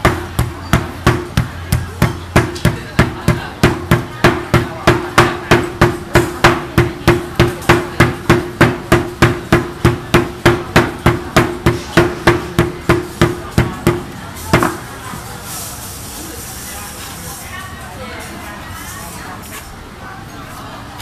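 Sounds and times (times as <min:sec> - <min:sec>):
mallets pounding on wood: 0:00.0 - 0:14.8.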